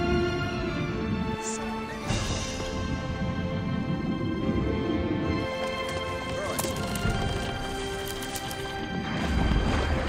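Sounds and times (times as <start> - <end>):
film music with sustained tones: 0.0 - 10.0.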